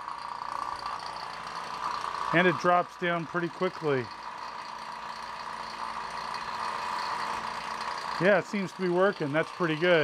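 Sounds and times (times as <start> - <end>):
electric vacuum pump running: 0.0 - 10.0.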